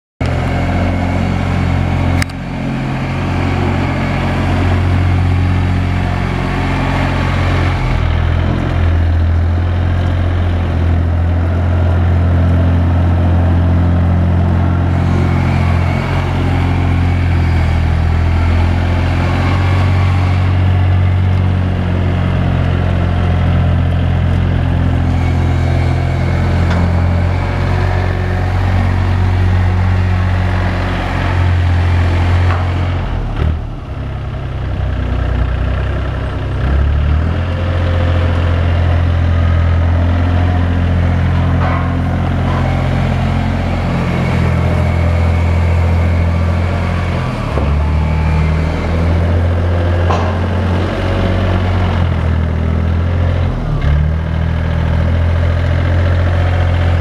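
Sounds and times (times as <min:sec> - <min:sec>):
diesel wheel loader running: 0:00.2 - 0:57.0.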